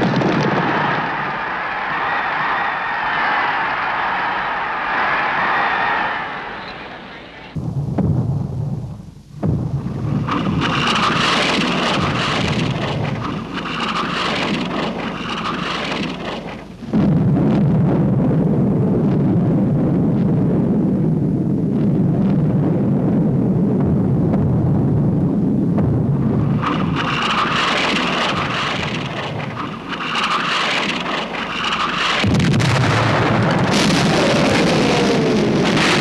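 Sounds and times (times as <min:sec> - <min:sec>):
rumbling artillery shellfire: 0:00.0 - 0:06.0, 0:07.5 - 0:36.0
deep rumble: 0:03.7 - 0:36.0.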